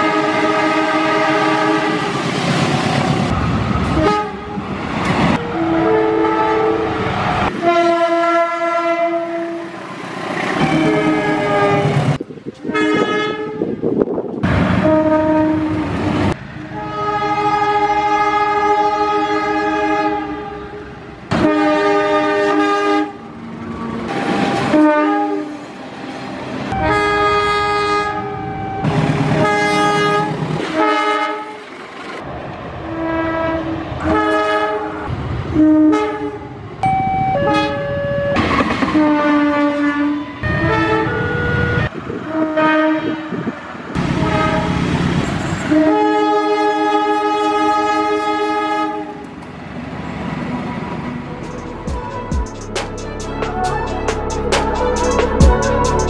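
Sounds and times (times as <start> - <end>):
locomotive air horn blasts: 0.0 - 2.1, 4.0 - 4.6, 5.4 - 9.7, 10.6 - 13.8, 14.8 - 16.0, 16.6 - 23.2, 24.4 - 25.6, 26.7 - 31.6, 32.9 - 36.5, 37.3 - 43.5, 44.2 - 44.8, 45.7 - 49.2, 51.4 - 56.0
train running noise: 0.0 - 46.4, 47.6 - 56.0.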